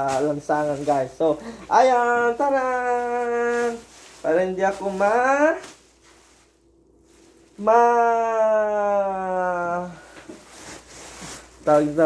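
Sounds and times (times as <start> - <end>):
plastic bag crinkling: 0.0 - 7.7
man singing maaa: 7.6 - 10.0.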